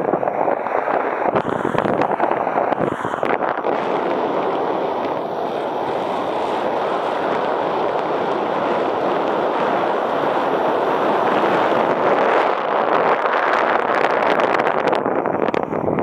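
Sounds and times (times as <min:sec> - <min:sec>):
wind rushing over microphone: 0:00.0 - 0:16.0.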